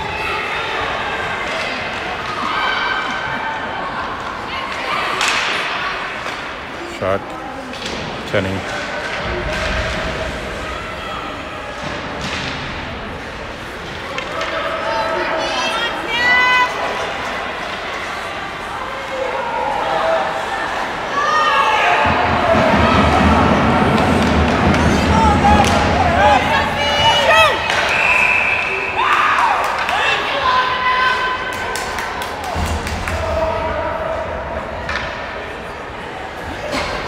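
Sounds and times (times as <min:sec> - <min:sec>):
puck and players hitting boards: 0:04.1 - 0:06.7, 0:07.6 - 0:10.7, 0:11.7 - 0:14.9, 0:22.0 - 0:28.6, 0:29.4 - 0:30.4, 0:31.5 - 0:33.8, 0:34.7 - 0:35.4
spectators shouting: 0:18.4 - 0:35.0.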